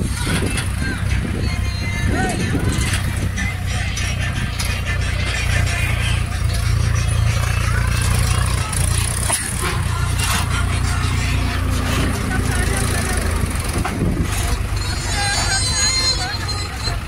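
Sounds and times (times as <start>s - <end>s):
tractor diesel engine under load: 0.0s - 17.0s.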